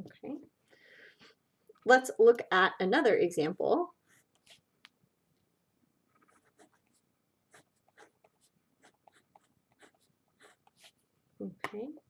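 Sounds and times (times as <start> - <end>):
marker scratching on paper: 4.0 - 4.7, 6.2 - 11.0.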